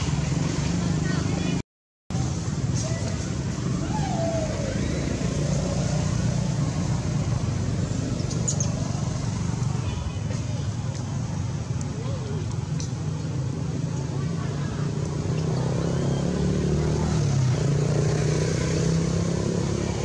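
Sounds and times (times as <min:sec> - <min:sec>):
faint voices: 0:09.3 - 0:16.4.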